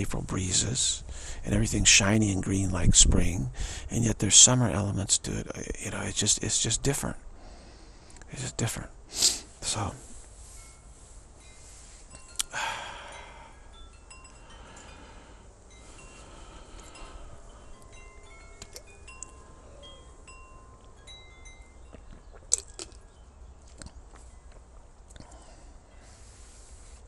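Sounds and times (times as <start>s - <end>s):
wind chimes tinkling: 9.6s - 23.6s, 24.2s - 24.5s.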